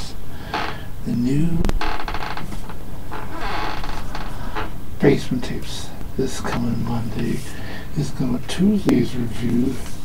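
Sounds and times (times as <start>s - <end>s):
objects scraping and creaking: 1.8s - 4.8s.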